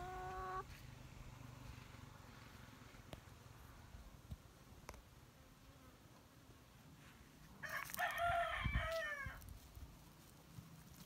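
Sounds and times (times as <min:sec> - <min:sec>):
chicken calling: 0:00.0 - 0:00.7.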